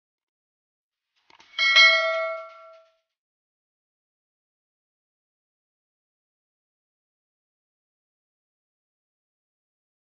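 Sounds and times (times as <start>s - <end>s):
notification bell ding: 1.6s - 2.8s.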